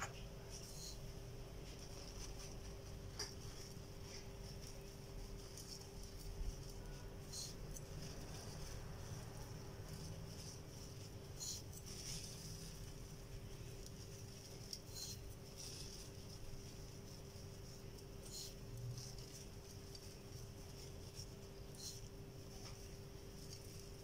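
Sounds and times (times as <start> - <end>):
faint steady hum: 0.0 - 24.0
coconut sprinkled by hand rustling: 0.1 - 24.0.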